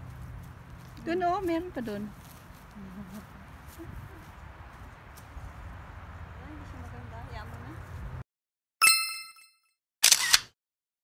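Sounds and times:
bright chime ringing: 8.8 - 9.7
camera shutter click: 10.0 - 10.6.

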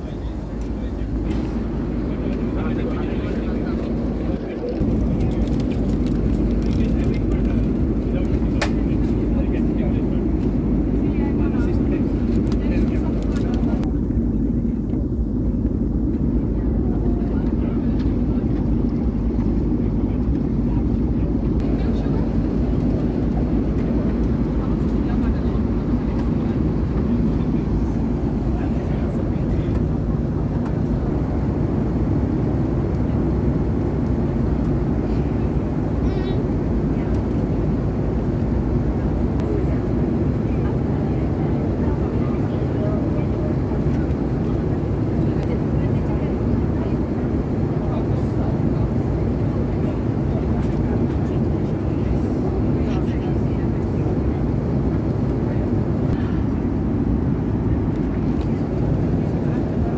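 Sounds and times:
airliner cabin engine noise: 0.0 - 59.9.

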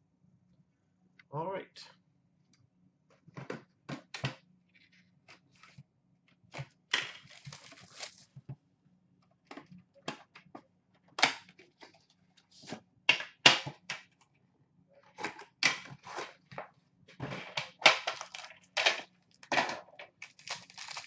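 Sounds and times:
packaging rustling: 6.5 - 8.4, 20.2 - 21.0.

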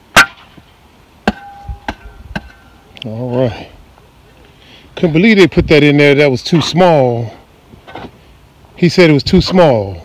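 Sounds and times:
shovel striking stony dirt: 1.2 - 2.6.

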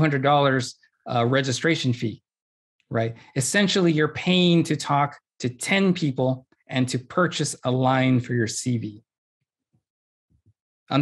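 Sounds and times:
man talking: 0.0 - 2.2, 2.9 - 9.0.

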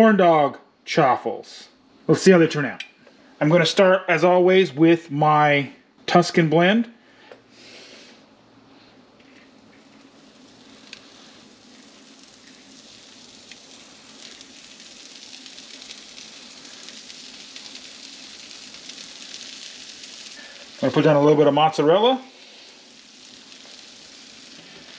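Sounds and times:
cheese sizzling on hot plates: 8.8 - 24.9.

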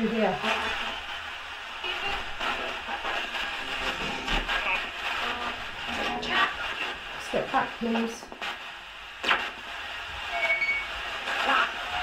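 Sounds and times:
radio playing music and voices: 0.0 - 12.0.

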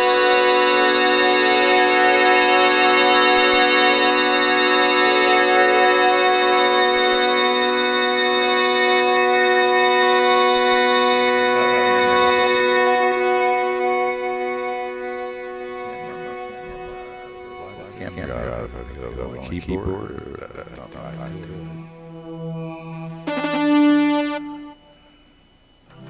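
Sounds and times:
electronic organ chord: 0.0 - 26.0.

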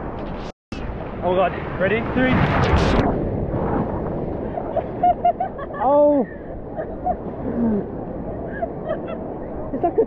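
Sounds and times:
wave crashing: 0.8 - 10.0
people laughing: 4.5 - 7.8, 8.5 - 10.0.

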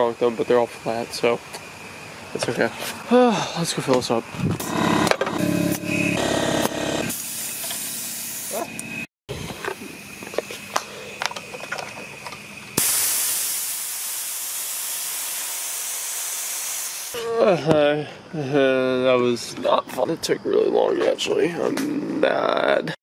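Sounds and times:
air compressor motor running: 4.3 - 17.2
air hissing: 7.0 - 11.5, 12.6 - 17.2
compressed air hissing from valve: 7.1 - 8.7, 12.8 - 17.2.

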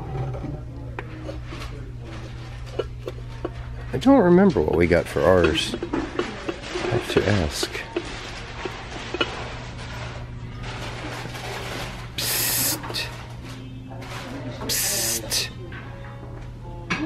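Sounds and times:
faint background music: 0.0 - 17.0
short hissing bursts: 12.2 - 12.9, 14.7 - 15.4.

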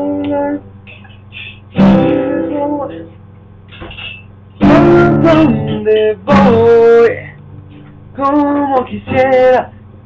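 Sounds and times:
man singing: 0.0 - 0.6, 2.0 - 3.1, 4.6 - 7.4, 8.2 - 9.8
acoustic guitar strumming: 0.0 - 9.9.

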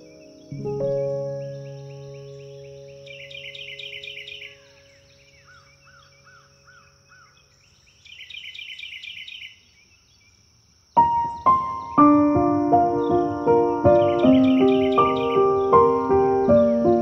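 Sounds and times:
whistled bird notes: 0.0 - 9.8, 12.9 - 17.0
birds chirping: 0.0 - 17.0.

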